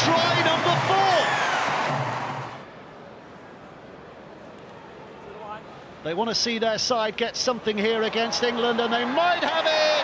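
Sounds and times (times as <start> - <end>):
stadium crowd cheering: 0.0 - 2.7, 7.7 - 10.0
crowd noise: 0.0 - 10.0.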